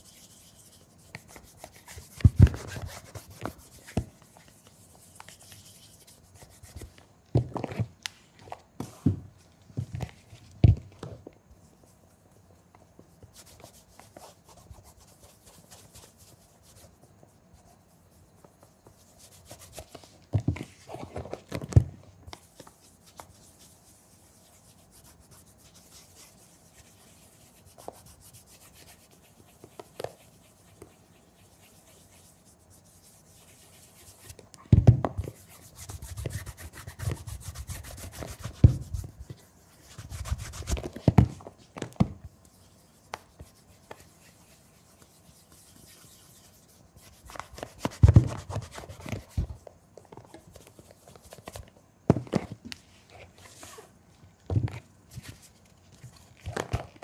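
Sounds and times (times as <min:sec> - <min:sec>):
cloth rubbing a leather shoe: 0:00.0 - 0:06.9, 0:13.3 - 0:20.2, 0:22.4 - 0:34.4, 0:35.3 - 0:41.0, 0:42.5 - 0:49.6.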